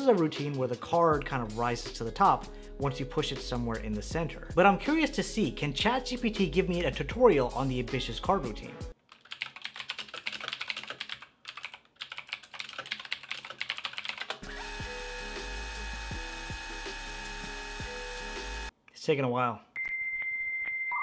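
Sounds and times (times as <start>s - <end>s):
synth background music: 0.0s - 9.0s, 14.4s - 18.7s
rapid typing on keyboard: 9.1s - 14.4s.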